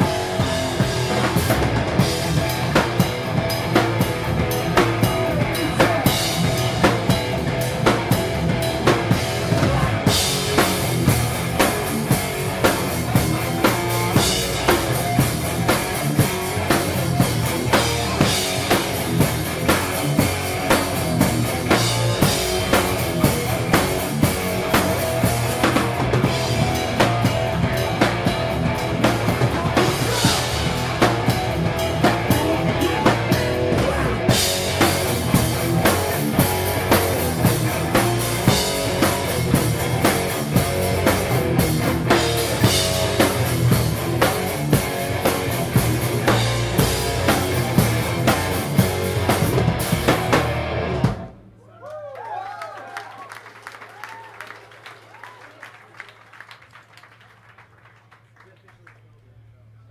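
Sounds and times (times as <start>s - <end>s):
distorted electric guitar: 0.0s - 51.4s
pounding drum kit: 0.0s - 51.6s
punk band playing live: 0.0s - 51.6s.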